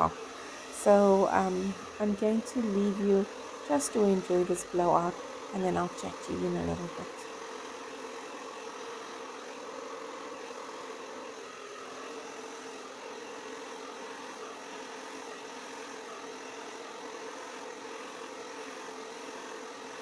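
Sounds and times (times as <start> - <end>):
hair dryer running: 0.0 - 20.0.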